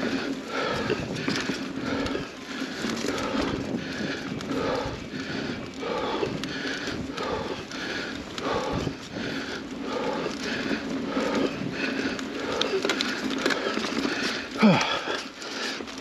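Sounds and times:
bike rattle and trail noise: 0:00.0 - 0:16.0
person breathing hard: 0:00.0 - 0:16.0.

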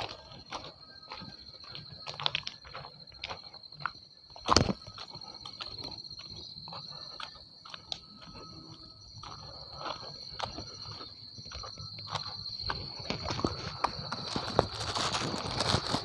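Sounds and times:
footsteps crunching on ballast: 0:00.0 - 0:16.0
insects droning: 0:00.0 - 0:16.0.

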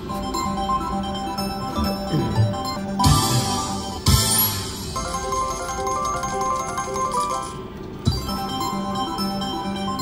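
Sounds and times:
slot machine game music: 0:00.0 - 0:10.0.

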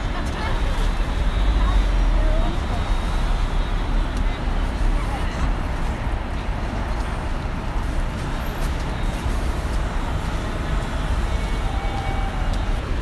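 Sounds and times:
traffic idling and moving: 0:00.0 - 0:13.0.

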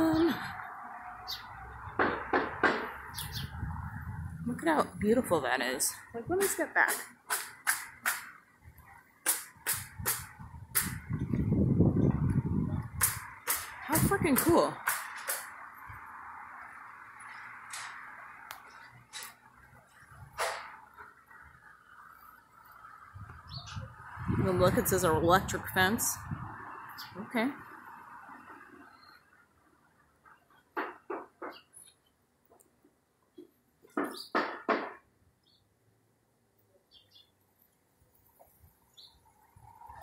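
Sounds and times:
steady street hiss: 0:00.0 - 0:40.0
sharp knocks: 0:02.0 - 0:03.0, 0:06.4 - 0:08.3, 0:09.2 - 0:11.0, 0:13.0 - 0:15.5, 0:30.7 - 0:31.7, 0:33.9 - 0:35.1.

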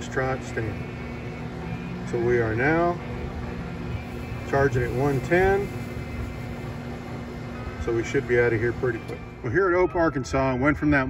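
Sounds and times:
charger fan and hum: 0:00.0 - 0:11.0
constant low tone: 0:00.0 - 0:11.0.

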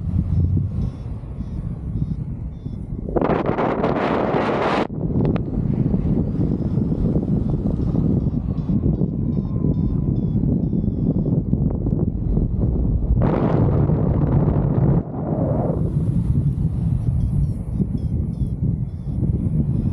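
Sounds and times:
wind rushing over microphone: 0:00.0 - 0:19.9.

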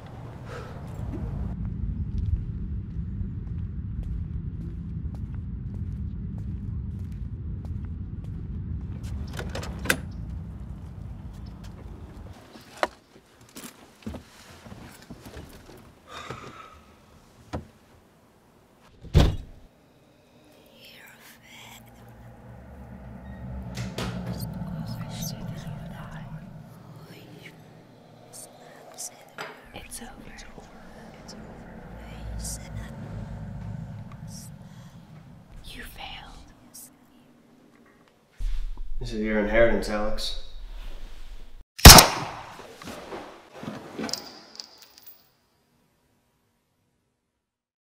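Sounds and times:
low drone: 0:00.0 - 0:12.4, 0:19.8 - 0:40.6
whispered voices: 0:20.5 - 0:37.3
gunshot echo: 0:41.8 - 0:42.6.

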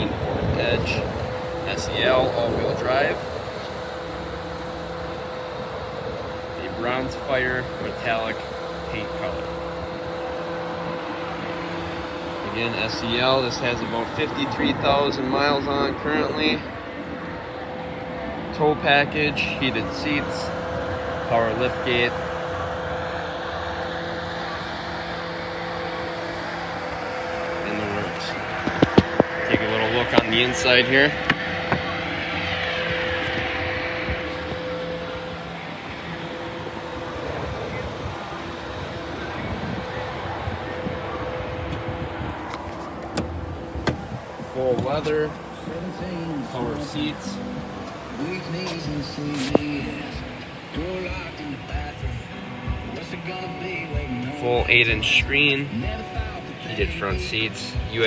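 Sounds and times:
mechanical hum: 0:00.0 - 0:57.9
background rush: 0:00.0 - 0:58.0.

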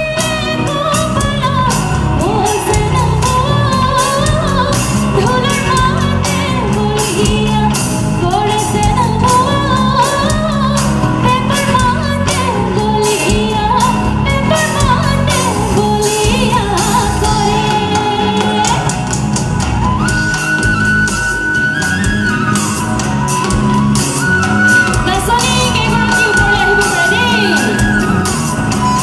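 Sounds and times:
woman singing into microphone: 0:00.0 - 0:19.2, 0:24.5 - 0:29.0
bass: 0:00.0 - 0:29.0.

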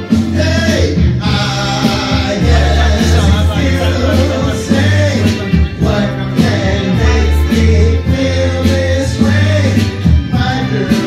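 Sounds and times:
live soul music with singing: 0:00.0 - 0:11.0
steady bass line: 0:00.0 - 0:11.0.

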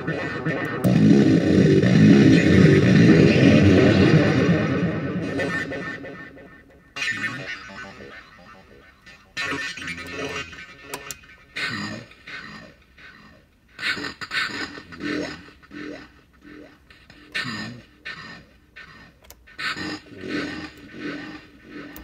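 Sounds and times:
garbled pitch-shifted voice echoing: 0:00.0 - 0:22.0.

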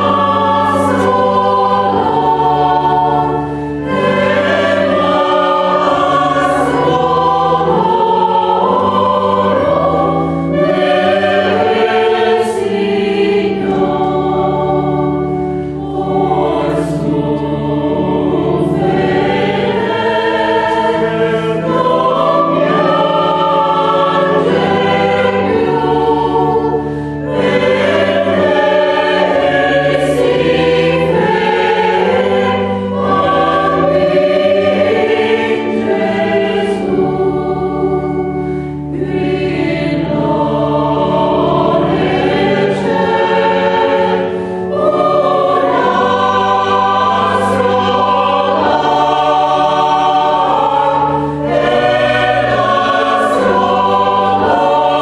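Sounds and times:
mixed choir singing a carol: 0:00.0 - 0:55.0.

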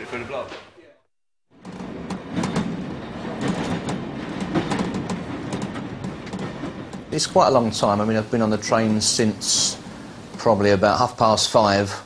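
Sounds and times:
train rumbling: 0:01.5 - 0:12.0
wheels clicking on track: 0:01.6 - 0:11.8.

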